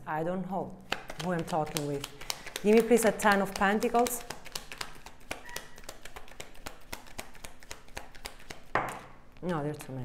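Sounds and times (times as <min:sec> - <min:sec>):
cards being shuffled: 0:00.9 - 0:09.2.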